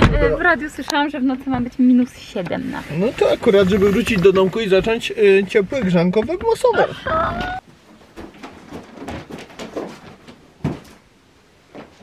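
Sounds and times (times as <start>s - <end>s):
footsteps: 1.4s - 11.1s.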